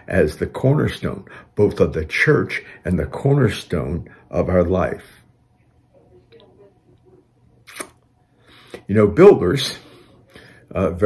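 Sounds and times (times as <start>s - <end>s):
man speaking: 0.0s - 5.3s, 8.8s - 10.1s, 10.7s - 11.0s
lip smack: 7.6s - 8.0s.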